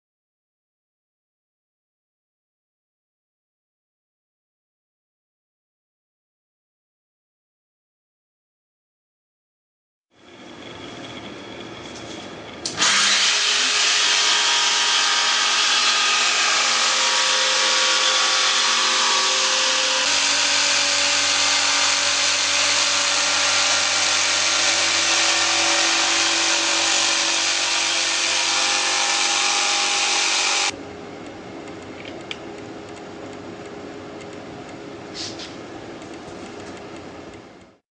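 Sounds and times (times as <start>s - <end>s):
jigsaw cutting plywood: 12.8s - 30.7s.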